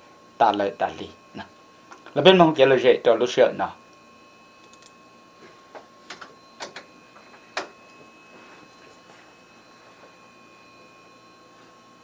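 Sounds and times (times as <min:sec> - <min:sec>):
faint steady electronic tone: 0:00.0 - 0:12.0
short irregular clicks: 0:04.6 - 0:04.9.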